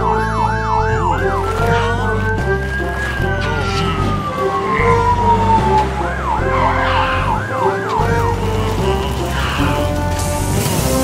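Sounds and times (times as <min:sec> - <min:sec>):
background music: 0:00.0 - 0:11.0
fire truck siren wailing: 0:00.0 - 0:11.0.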